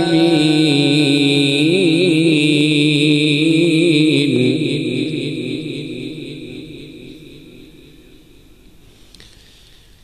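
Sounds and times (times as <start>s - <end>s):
melodic recitation over microphone: 0.0s - 8.8s.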